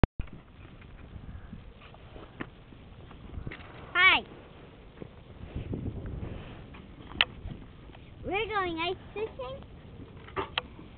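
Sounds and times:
faint wind: 0:00.0 - 0:10.9.

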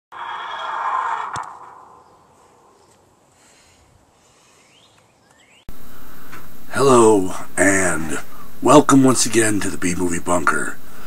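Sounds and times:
whooshing sound effect: 0:00.1 - 0:02.9.

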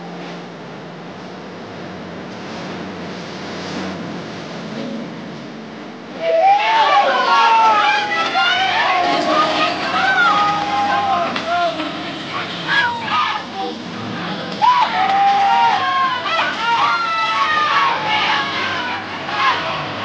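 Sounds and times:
crowd chatter: 0:06.0 - 0:20.0
crowd shouting and whooping: 0:06.1 - 0:20.0.

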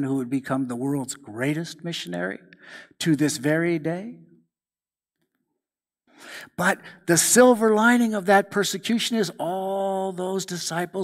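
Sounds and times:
man speaking: 0:00.0 - 0:04.3, 0:06.2 - 0:11.0.

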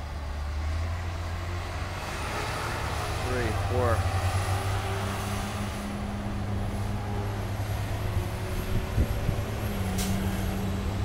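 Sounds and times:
truck engine rumble: 0:00.0 - 0:11.0.

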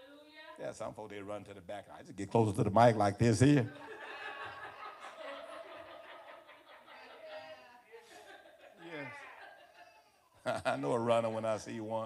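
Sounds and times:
people chuckling: 0:03.7 - 0:11.4.

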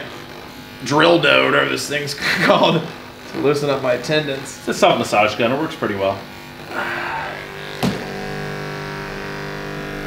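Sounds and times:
massage gun buzzing: 0:00.0 - 0:10.0
massage gun click: 0:07.8 - 0:08.2.

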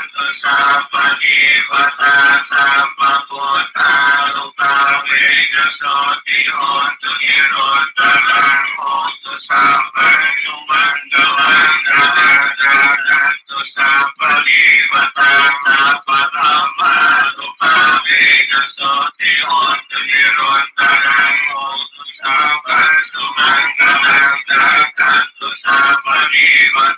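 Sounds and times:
person singing: 0:00.0 - 0:26.9.

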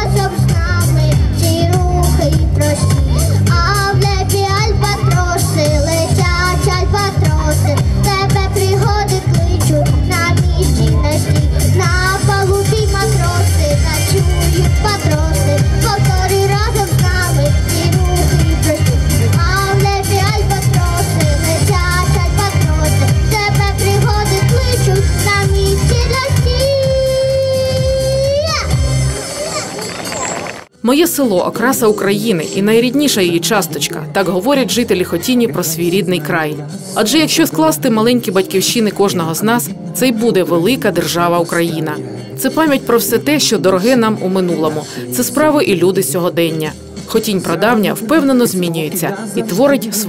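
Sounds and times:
girl singing into a microphone: 0:00.0 - 0:28.8
pop backing music with heavy bass: 0:00.0 - 0:29.8, 0:32.6 - 0:50.0.

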